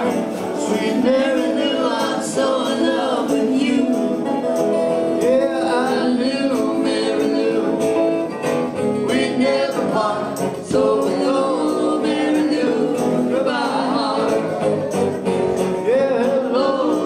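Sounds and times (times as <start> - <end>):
live band playing: 0.0 - 17.0
person singing: 0.0 - 17.0.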